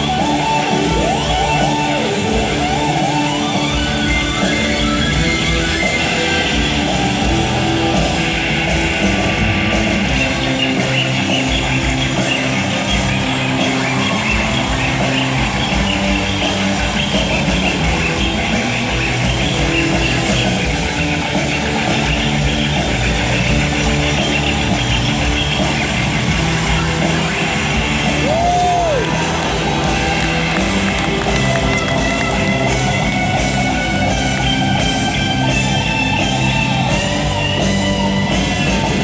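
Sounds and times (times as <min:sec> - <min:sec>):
electric guitar solo: 0:00.0 - 0:39.0
live rock band: 0:00.0 - 0:39.0.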